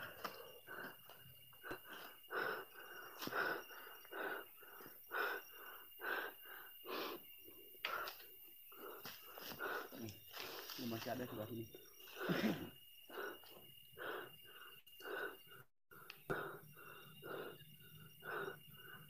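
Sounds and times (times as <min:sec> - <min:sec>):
person breathing hard: 0:00.0 - 0:10.7, 0:11.9 - 0:19.0.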